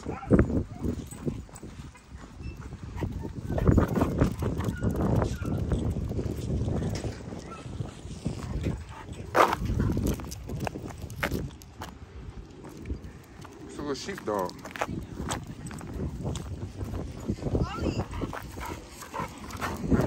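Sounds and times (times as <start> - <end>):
footsteps on gravel: 8.0 - 12.0, 13.4 - 20.0.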